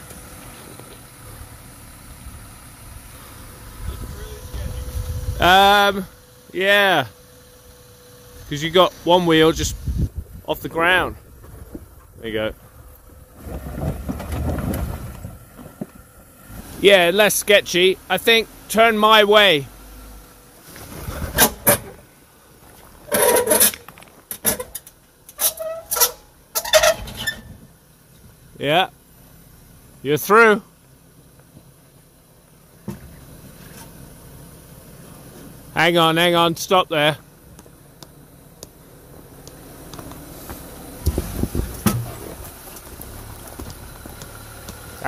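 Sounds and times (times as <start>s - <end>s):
engine running low: 0.0s - 45.0s.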